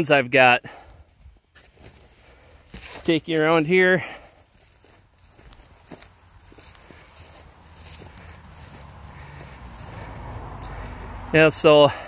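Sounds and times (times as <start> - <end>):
footsteps on grass and dirt: 0.8 - 11.4.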